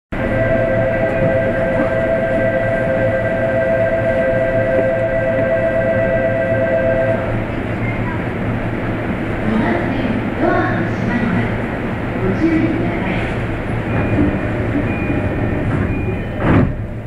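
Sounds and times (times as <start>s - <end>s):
two-pitch electronic departure tone: 0.2s - 7.4s.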